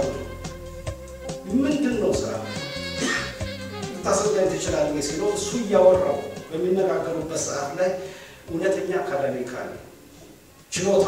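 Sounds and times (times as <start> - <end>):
background music with held notes: 0.0 - 10.0
man's voice with drawn-out pitch: 1.4 - 3.4, 4.0 - 9.9.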